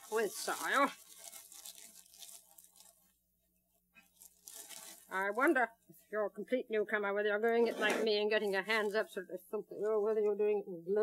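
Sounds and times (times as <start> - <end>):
plastic bag crinkling: 0.0 - 3.2, 4.0 - 5.6.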